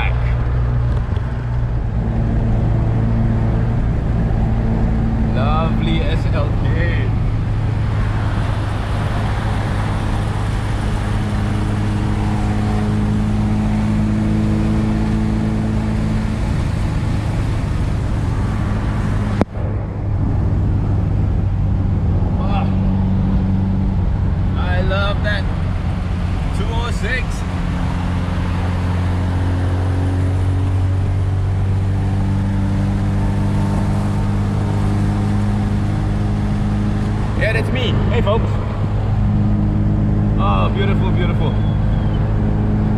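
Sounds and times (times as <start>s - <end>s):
car engine drone: 0.0s - 42.9s
tyre and road noise: 0.0s - 42.9s.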